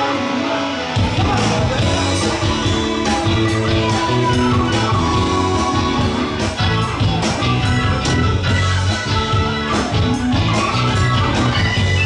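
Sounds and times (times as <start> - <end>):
drum kit: 0.0 - 12.0
electric guitar: 0.0 - 12.0
keyboards: 0.0 - 12.0
low bass notes: 0.9 - 12.0.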